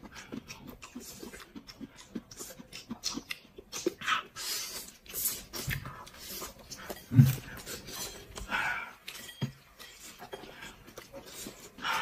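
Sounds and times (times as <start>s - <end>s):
person chewing and lip-smacking: 0.0s - 12.0s.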